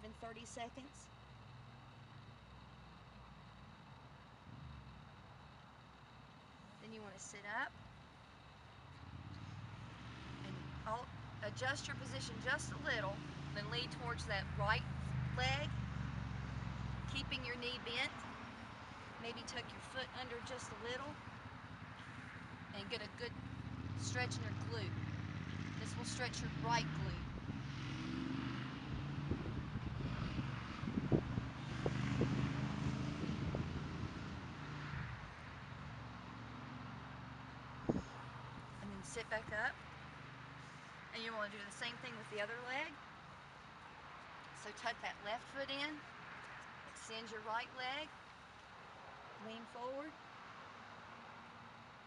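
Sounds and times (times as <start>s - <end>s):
wind on microphone: 28.8s - 34.4s.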